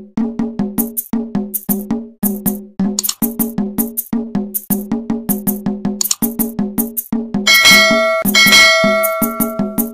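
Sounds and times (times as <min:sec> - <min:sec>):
quick percussive beat: 0:00.8 - 0:09.9
bright bell chimes: 0:07.5 - 0:09.9.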